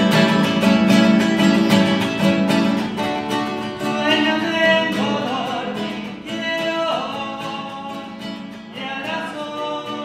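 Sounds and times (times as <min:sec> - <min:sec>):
classical guitars strummed: 0:00.0 - 0:10.0
man singing: 0:03.4 - 0:10.0.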